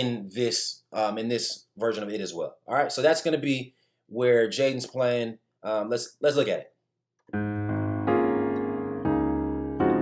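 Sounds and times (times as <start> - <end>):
piano chords: 7.3 - 10.0.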